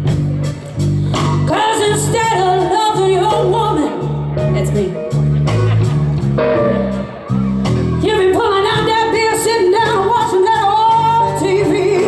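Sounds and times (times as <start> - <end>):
electric blues band: 0.0 - 12.0
woman singing blues: 1.1 - 5.2, 8.0 - 12.0.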